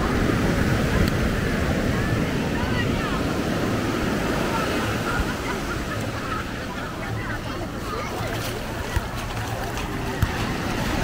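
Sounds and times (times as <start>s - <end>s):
small waves washing ashore: 0.0s - 11.0s
voices of many bathers: 0.0s - 11.0s
wind rumble on microphone: 0.0s - 11.0s.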